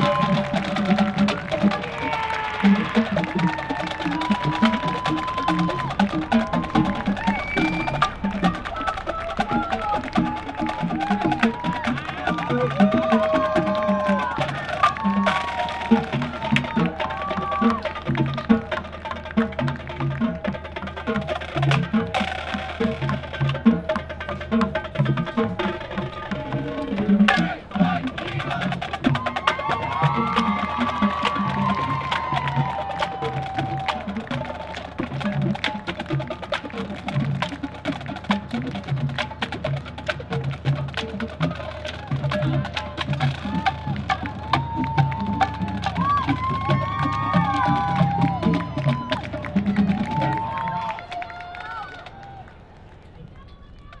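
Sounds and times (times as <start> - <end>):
bass drums beating: 0.0 - 50.9
voices calling: 0.0 - 54.0.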